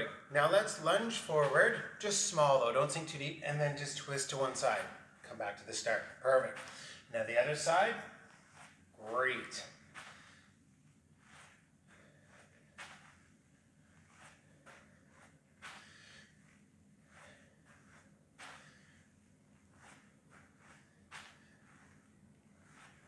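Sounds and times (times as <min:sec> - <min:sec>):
footfalls on artificial turf: 0:00.5 - 0:01.9
soft exhales: 0:10.0 - 0:10.6, 0:15.6 - 0:19.1.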